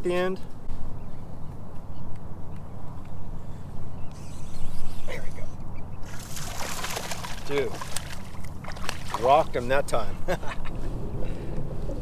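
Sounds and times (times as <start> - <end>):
fish splashing in water: 6.0 - 9.5.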